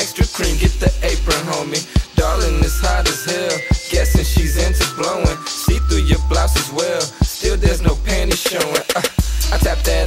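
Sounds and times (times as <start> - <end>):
hip hop beat: 0.0 - 10.0
person rapping: 0.0 - 10.0.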